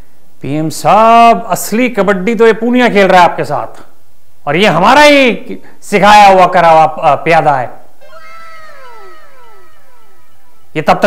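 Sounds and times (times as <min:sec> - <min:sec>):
falling comic tones: 0:08.0 - 0:11.0.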